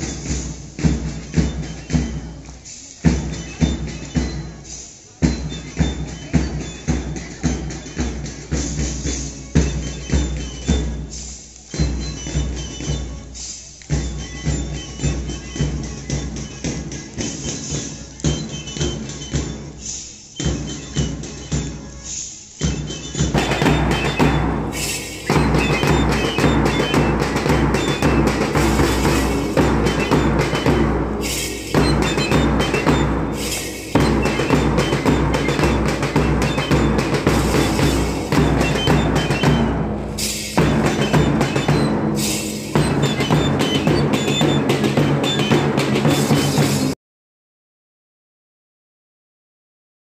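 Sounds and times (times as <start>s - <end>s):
shrill recorders playing march: 0.0s - 47.0s
snare drums: 0.0s - 47.0s
bass drum pounding: 23.3s - 42.2s.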